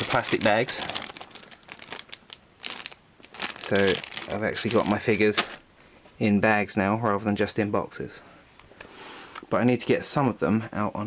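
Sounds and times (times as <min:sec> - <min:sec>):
plastic bag crinkling: 0:00.0 - 0:05.6.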